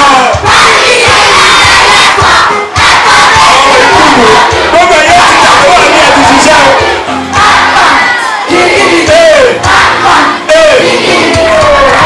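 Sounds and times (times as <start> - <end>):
children shouting and cheering: 0.0 - 12.0.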